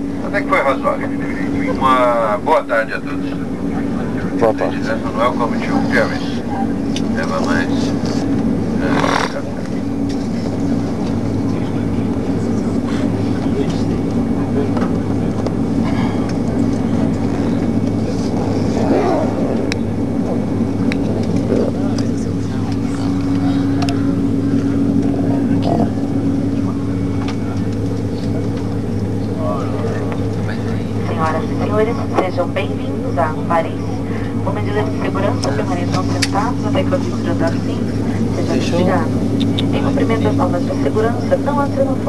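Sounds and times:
airplane cabin engine drone: 0:00.0 - 0:42.0.

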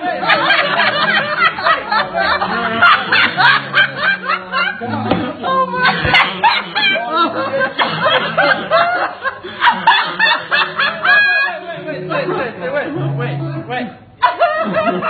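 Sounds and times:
people snickering and laughing: 0:00.0 - 0:15.0.

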